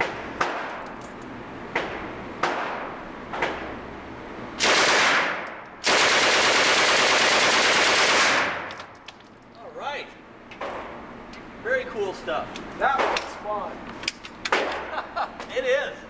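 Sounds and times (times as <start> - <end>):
sharp gunshot bangs: 4.6 - 6.2
submachine gun full-auto bursts: 4.6 - 8.6.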